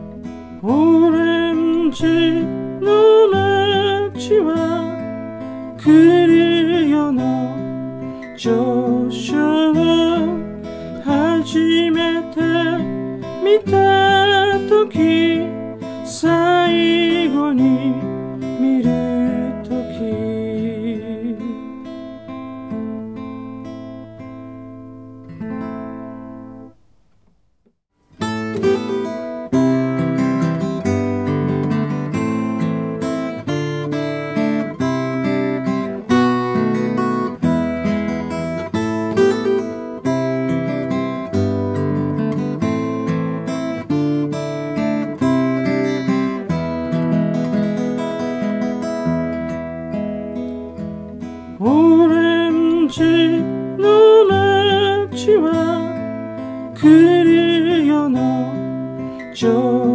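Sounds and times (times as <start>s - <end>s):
acoustic guitar strumming chords: 0.0s - 59.9s.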